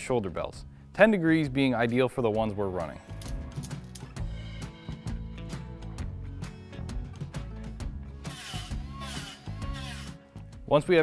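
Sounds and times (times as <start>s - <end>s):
background music: 0.0s - 11.0s
rotary tool whirring on steel: 8.2s - 10.2s.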